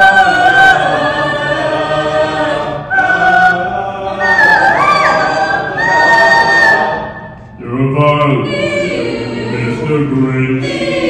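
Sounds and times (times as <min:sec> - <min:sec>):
mixed choir singing: 0:00.0 - 0:11.0.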